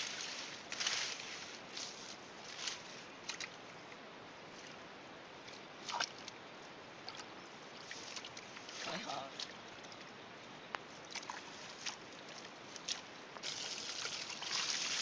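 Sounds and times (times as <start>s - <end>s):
hands rustling floating leaves: 0.0s - 3.6s
small water splashes: 5.4s - 6.4s, 7.0s - 10.1s, 11.1s - 15.0s.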